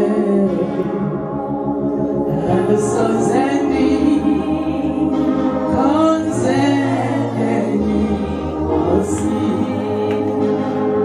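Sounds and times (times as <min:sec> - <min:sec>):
group singing gospel song: 0:00.0 - 0:01.3, 0:02.1 - 0:11.0
low musical accompaniment: 0:00.0 - 0:11.0.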